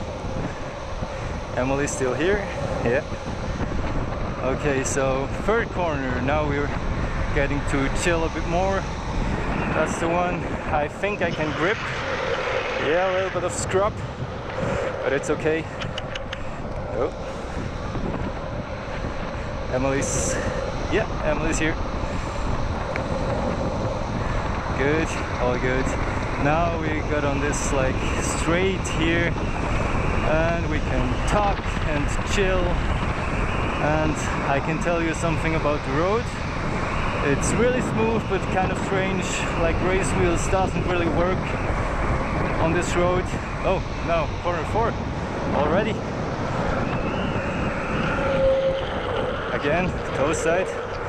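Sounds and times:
skateboard wheels rolling on asphalt: 0.0s - 51.0s
thin high whine: 0.0s - 51.0s
wind rushing over microphone: 0.0s - 51.0s.

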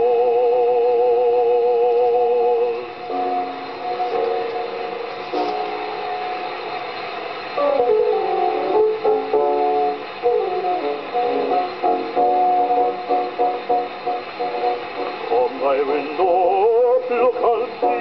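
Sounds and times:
gramophone accompaniment chords: 0.0s - 18.0s
man singing with vibrato: 15.2s - 18.0s.

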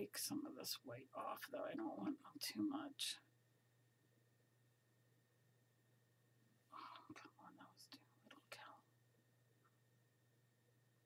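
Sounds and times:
woman whispering: 0.0s - 3.3s, 6.7s - 8.9s.

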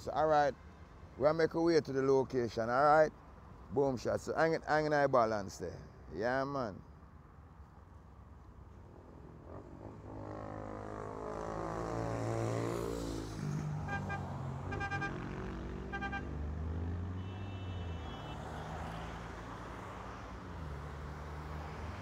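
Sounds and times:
low rumble of engines: 5.4s - 22.0s
vehicle passing by: 9.3s - 17.2s, 18.1s - 22.0s
car horn toots: 13.8s - 16.4s, 17.1s - 19.1s.

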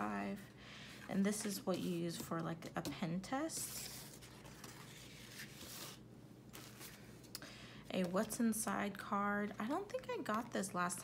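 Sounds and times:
paper cards rustling and sliding: 3.5s - 7.3s.

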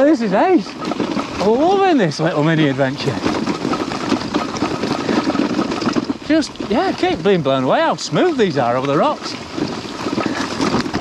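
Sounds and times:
bike and luggage rattling: 0.0s - 11.0s
bike tyres rolling on rocky trail: 0.0s - 11.0s.

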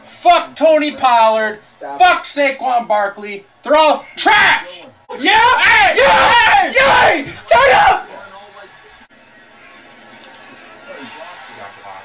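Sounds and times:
television music: 0.0s - 12.0s
people cheering: 3.8s - 12.0s.

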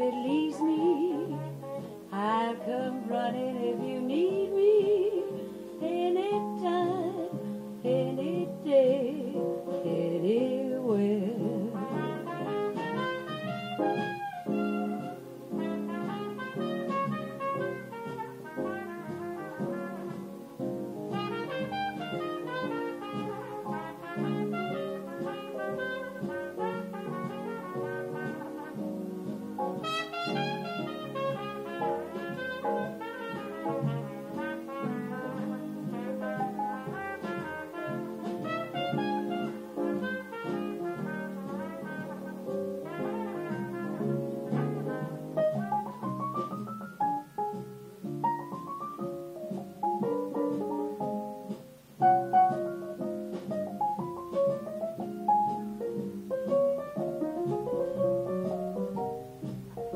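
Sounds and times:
piano: 0.0s - 59.9s
cornet melody: 11.1s - 59.9s.

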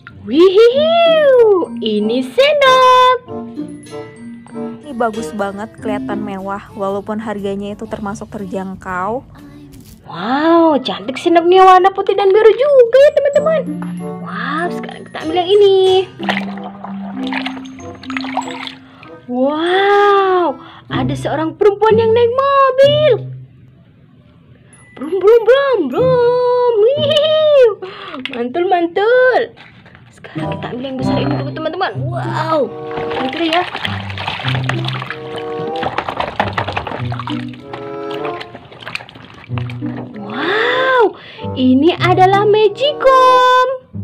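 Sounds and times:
music with held low notes: 12.8s - 23.8s, 30.3s - 44.0s
water splashes: 15.8s - 19.3s, 29.6s - 41.1s
hand scrubbing in soapy water: 16.0s - 19.3s, 29.6s - 41.1s.

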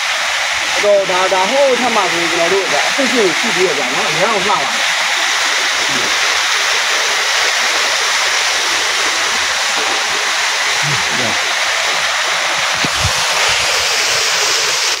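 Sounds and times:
waterfall rushing over rocks: 0.0s - 15.0s.

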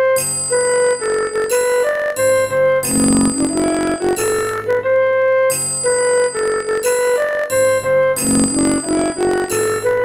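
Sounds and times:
synthesized flute melody: 0.0s - 10.0s.

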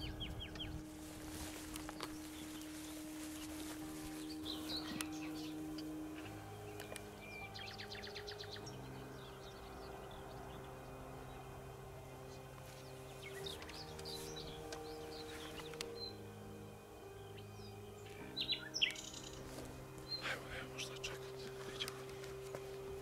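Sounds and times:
birds chirping: 0.0s - 23.0s
soft music of sustained chords: 0.0s - 23.0s.

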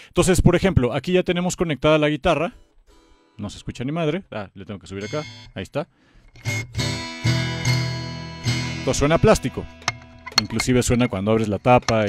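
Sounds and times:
homemade guitar strummed: 6.3s - 12.0s.

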